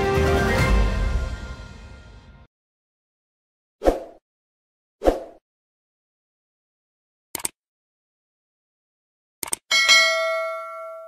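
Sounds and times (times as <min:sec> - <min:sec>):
mouse double click: 0:07.4 - 0:07.6, 0:09.4 - 0:09.6
notification bell chime: 0:09.7 - 0:11.0.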